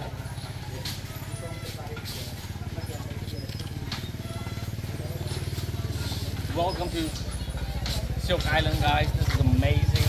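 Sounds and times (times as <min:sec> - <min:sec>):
small engine idling: 0:00.0 - 0:10.0.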